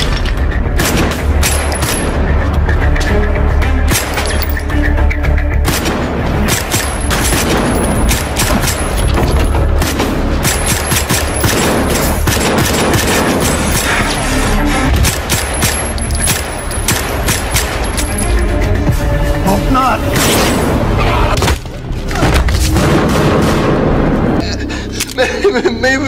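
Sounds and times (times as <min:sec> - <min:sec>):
action film score: 0:00.0 - 0:26.0
rapid gunshots: 0:00.7 - 0:02.1, 0:05.6 - 0:09.0, 0:09.6 - 0:14.2, 0:14.9 - 0:17.9.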